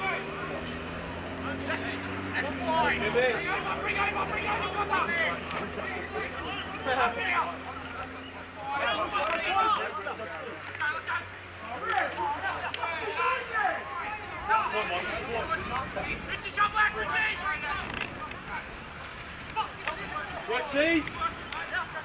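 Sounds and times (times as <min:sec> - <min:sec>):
voices calling and shouting: 0:00.0 - 0:22.0.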